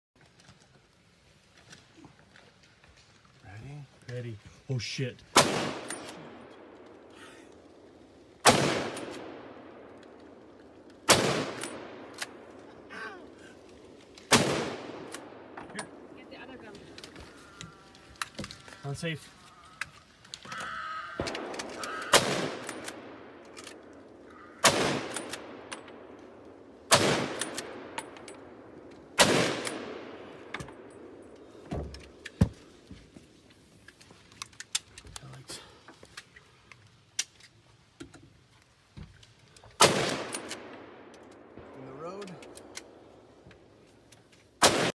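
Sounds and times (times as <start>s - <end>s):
rifle shots echoing: 5.3s - 12.7s, 13.8s - 16.2s, 20.8s - 31.3s, 39.8s - 42.0s, 44.6s - 45.0s.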